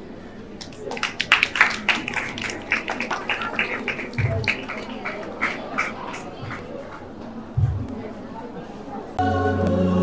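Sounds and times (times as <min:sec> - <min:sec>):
people clapping: 0:00.6 - 0:07.1.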